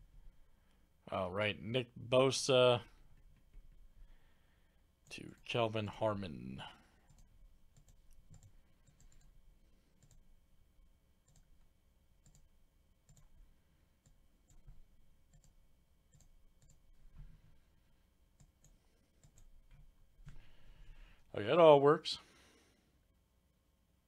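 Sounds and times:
computer mouse and keyboard clicks: 0:07.1 - 0:09.4, 0:10.0 - 0:10.3, 0:11.2 - 0:11.6, 0:12.2 - 0:12.5, 0:18.4 - 0:20.4.

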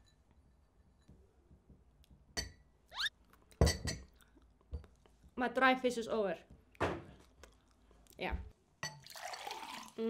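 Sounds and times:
short rising squeak: 0:02.9 - 0:03.1.

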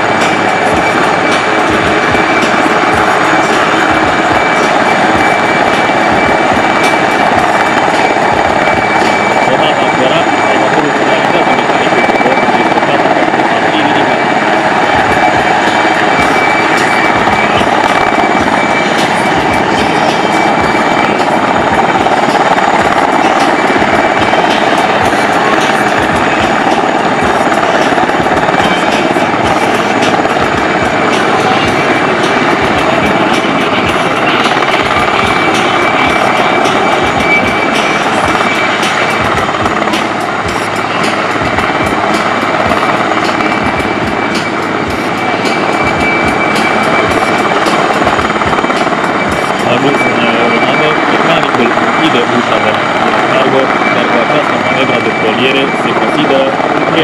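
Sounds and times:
helicopter rotor chop: 0:00.0 - 0:57.0
high turbine whine: 0:00.0 - 0:57.0.

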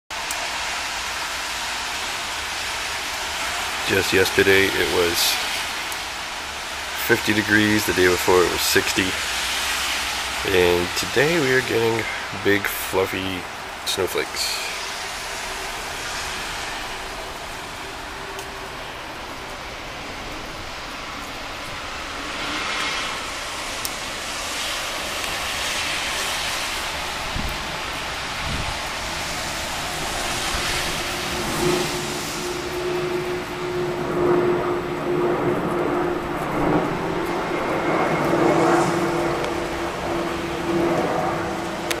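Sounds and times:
engine hum: 0:01.6 - 0:42.0
vehicle rushing past: 0:02.5 - 0:42.0.

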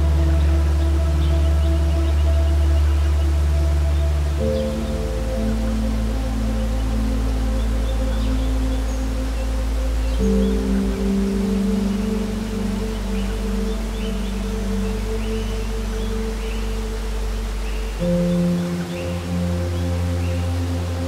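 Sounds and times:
slow held chords music: 0:00.0 - 0:21.0.

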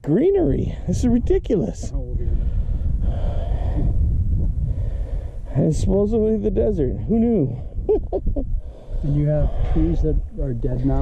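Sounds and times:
wind buffeting microphone: 0:00.2 - 0:11.0.

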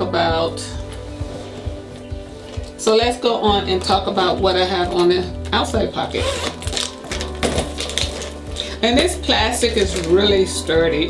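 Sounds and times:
background music: 0:00.0 - 0:11.0
plastic bag rattling: 0:06.2 - 0:10.3.

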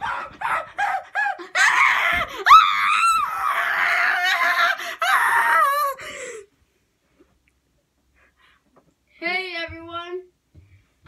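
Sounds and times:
boy screaming excitedly: 0:00.0 - 0:06.0.

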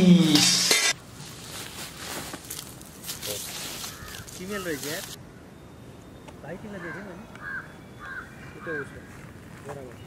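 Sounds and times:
bird calling: 0:03.5 - 0:10.0.

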